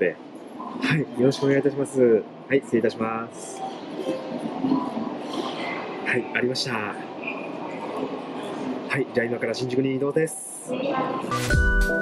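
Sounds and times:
faint distant voices: 0.0s - 11.3s.

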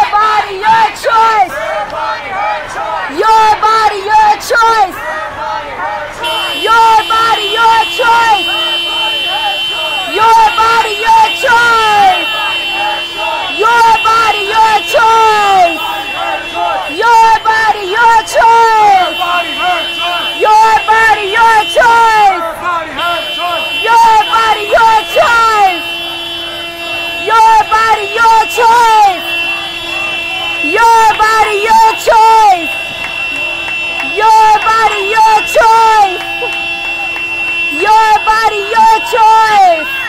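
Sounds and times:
crowd shouting: 0.0s - 40.0s
car horn long blast: 6.1s - 40.0s.

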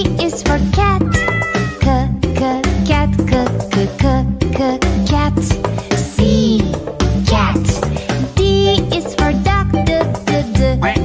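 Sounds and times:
upbeat children's music: 0.0s - 11.0s
cartoon cat meowing: 0.9s - 1.9s.

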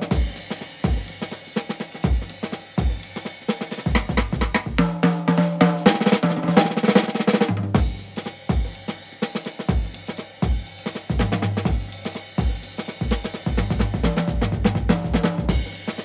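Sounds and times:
drum kit beat: 0.0s - 16.0s.

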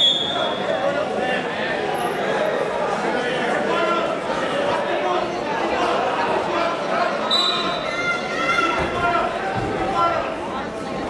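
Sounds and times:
spectators talking in echoing gym: 0.0s - 11.0s.

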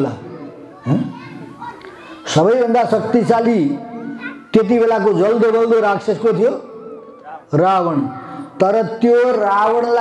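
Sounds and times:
man speaking into a microphone: 0.0s - 1.2s, 2.2s - 10.0s
faint higher voices: 0.0s - 10.0s.

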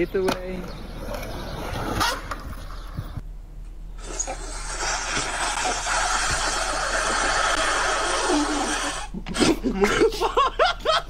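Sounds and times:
noodle slurp: 4.0s - 9.2s.

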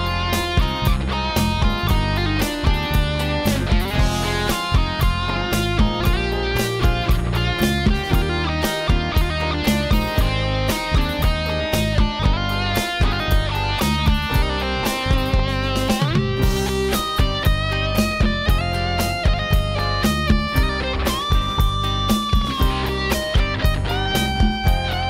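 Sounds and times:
guitars playing melodic line: 0.0s - 25.0s
keyboard backing: 0.0s - 25.0s
steady drum beat: 0.0s - 25.0s.

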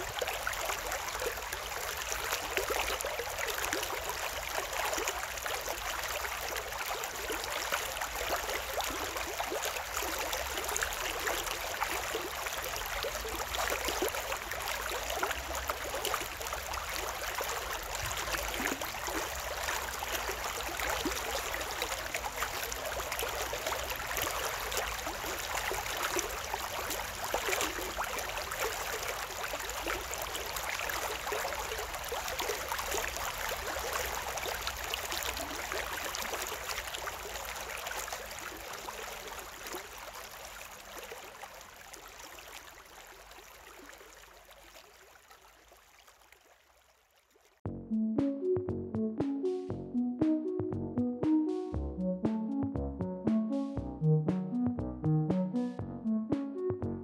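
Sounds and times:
stream water babbling over stones: 0.0s - 47.6s.

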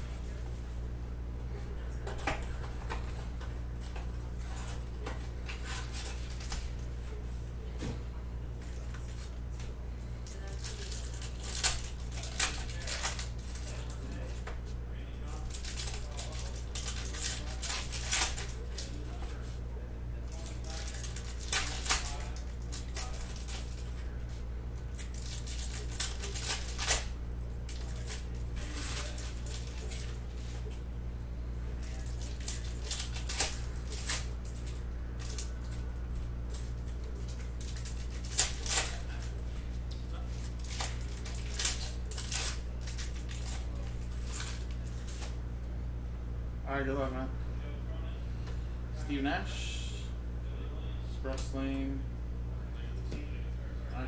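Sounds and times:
steady low hum: 0.0s - 54.0s
foil wrappers tearing and crinkling: 5.4s - 6.7s, 10.2s - 14.4s, 15.2s - 19.1s, 20.2s - 24.0s, 24.9s - 30.7s, 31.8s - 35.8s, 36.5s - 45.4s.

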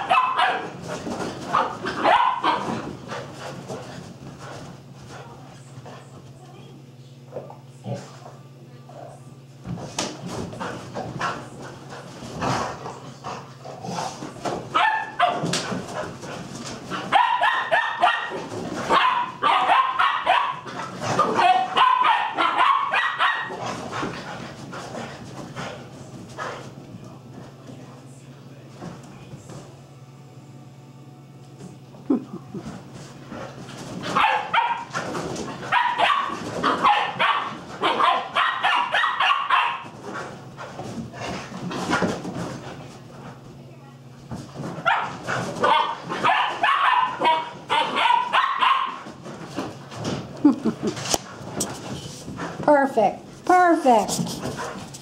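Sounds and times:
dogs barking: 0.0s - 2.9s, 14.7s - 15.7s, 16.9s - 24.1s, 34.0s - 40.0s, 44.8s - 49.2s.

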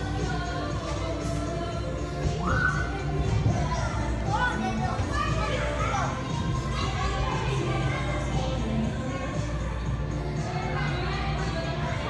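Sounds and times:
background music: 0.0s - 12.0s
children chattering: 3.6s - 12.0s.

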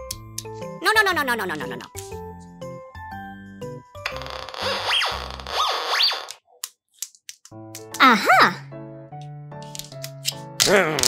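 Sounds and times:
background music: 0.0s - 5.5s, 7.4s - 11.0s.

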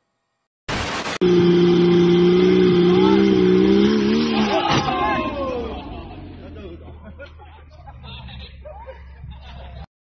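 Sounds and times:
car crash crunch: 0.7s - 1.4s, 4.3s - 6.0s
car engine at high revs: 0.7s - 6.9s
people shouting: 4.1s - 6.2s.

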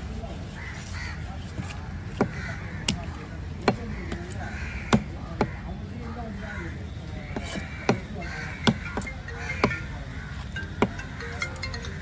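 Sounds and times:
crows cawing: 0.5s - 12.0s
cleaver chopping fish on wood: 1.6s - 5.8s, 7.3s - 9.9s, 10.7s - 11.1s.

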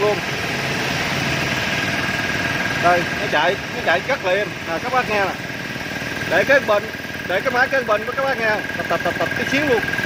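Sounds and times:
air compressor running: 0.0s - 10.0s
high whine: 0.0s - 10.0s.

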